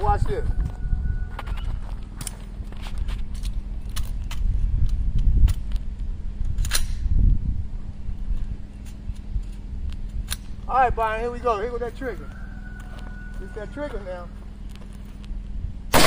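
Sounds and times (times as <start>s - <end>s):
wind rumbling on microphone: 0.0s - 13.6s, 15.4s - 16.0s.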